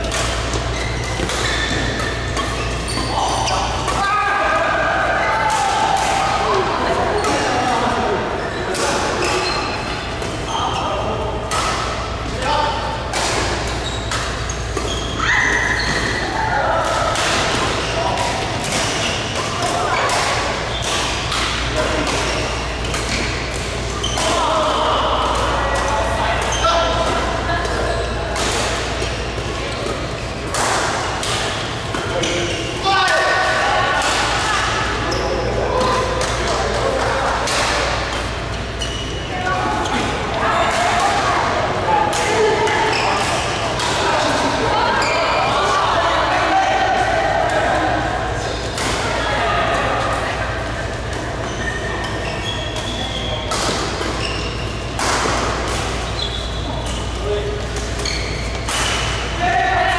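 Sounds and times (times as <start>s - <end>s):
rackets hitting shuttlecock: 0.0s - 4.0s, 13.0s - 35.0s, 52.0s - 59.4s
voices in echoing hall: 0.0s - 59.9s.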